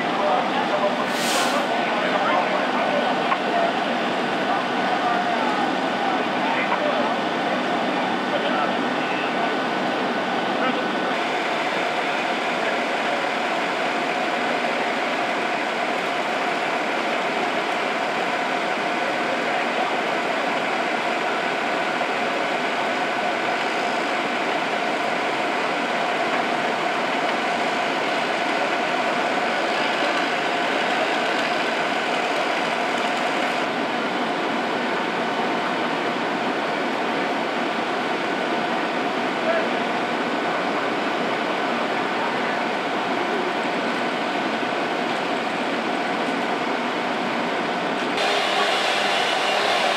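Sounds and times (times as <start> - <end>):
fire engine diesel engines and pumps: 0.0 - 49.9.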